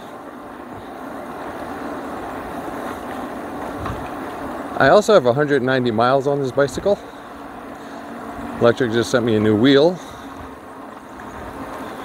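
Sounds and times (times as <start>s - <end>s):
bike road noise: 0.0s - 12.0s
wind noise: 2.3s - 4.6s.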